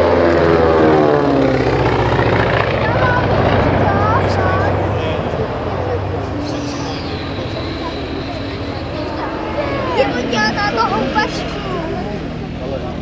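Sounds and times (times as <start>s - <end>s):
aircraft engines droning: 0.0s - 13.0s
people talking: 2.7s - 13.0s.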